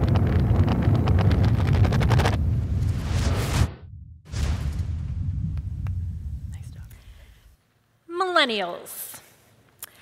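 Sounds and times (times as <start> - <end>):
low rumble of logo intro effect: 0.0 - 6.8.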